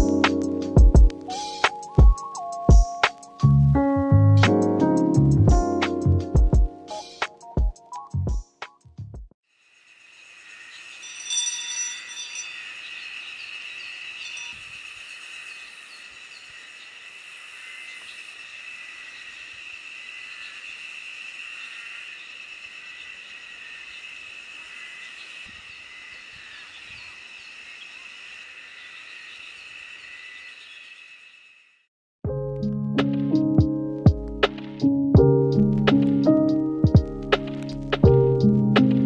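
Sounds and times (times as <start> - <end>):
high insect chorus: 9.5 - 31.9
bird chirps: 10.6 - 17.0, 19.0 - 31.4
brass hand bell ringing: 11.0 - 12.5.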